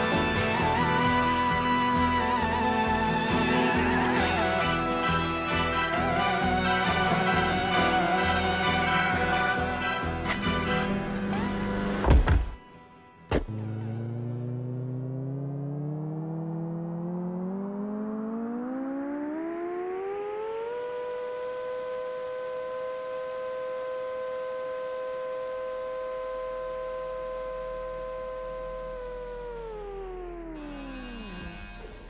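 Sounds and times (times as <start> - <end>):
siren-like wail: 0.0 - 11.8, 13.6 - 32.0.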